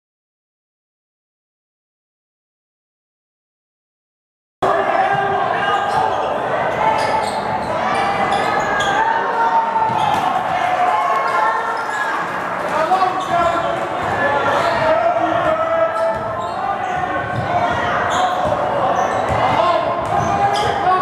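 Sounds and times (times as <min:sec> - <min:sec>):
echoing voices: 0:04.6 - 0:21.0.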